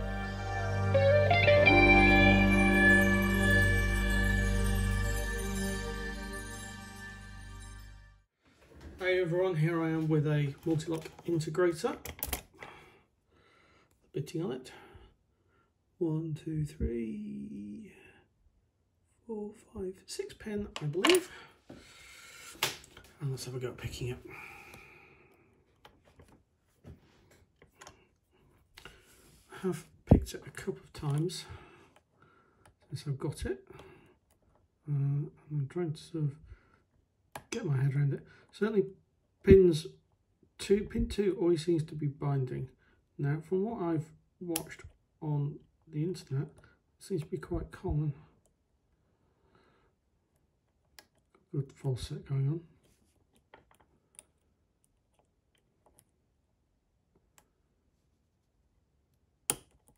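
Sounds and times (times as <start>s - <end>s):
lock pick clicking in cylinder: 59.5s - 59.9s.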